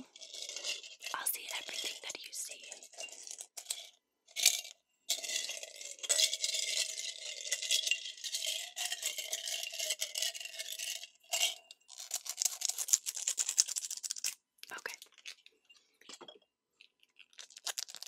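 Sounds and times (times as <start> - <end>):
coins rattling together: 0.1 - 14.4
foil crinkling: 11.9 - 14.4, 17.2 - 18.0.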